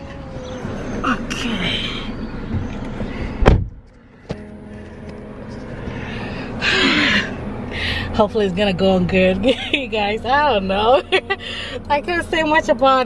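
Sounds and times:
low steady hum: 0.0 - 13.0
street noise: 0.0 - 13.0
car door slamming: 2.4 - 4.5.

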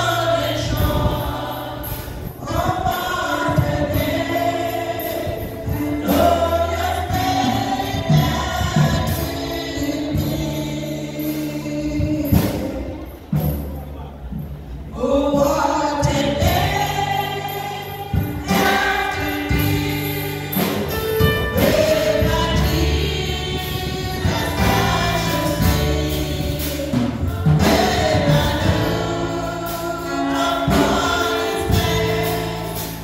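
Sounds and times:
congregation singing a hymn: 0.0 - 13.6, 14.9 - 33.0.

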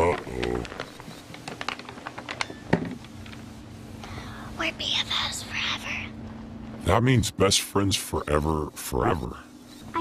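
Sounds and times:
paper sheet rustling and clicking: 0.0 - 3.5.

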